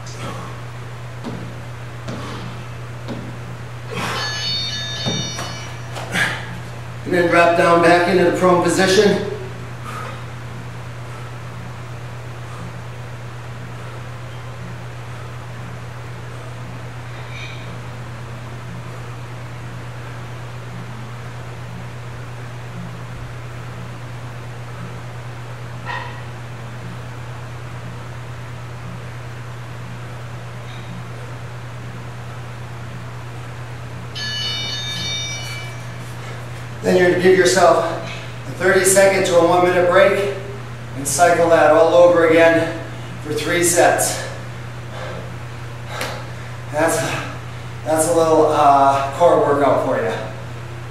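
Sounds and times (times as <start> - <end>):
low background hum: 0.0 - 50.9
sneakers scuffing on wooden floor: 1.2 - 3.4
shoe squeak: 3.9 - 6.5.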